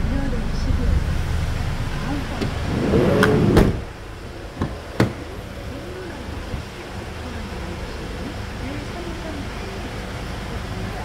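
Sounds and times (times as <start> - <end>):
background rumble: 0.0 - 11.0
van door shutting thump: 3.2 - 3.9.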